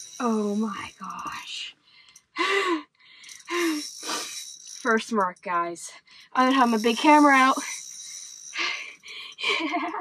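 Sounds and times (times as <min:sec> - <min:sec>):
woman speaking: 0:00.2 - 0:01.7, 0:04.9 - 0:07.7.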